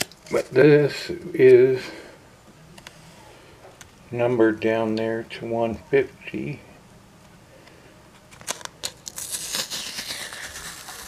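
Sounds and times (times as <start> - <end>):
plastic packaging crinkling: 8.4 - 11.0.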